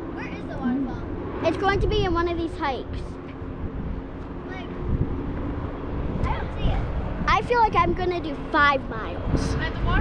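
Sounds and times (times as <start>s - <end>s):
wind buffeting microphone: 0.0s - 10.0s
person speaking a word: 0.6s - 1.0s.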